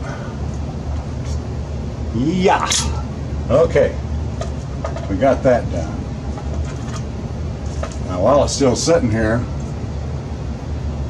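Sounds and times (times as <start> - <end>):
low mechanical rumble and hum: 0.0 - 11.0.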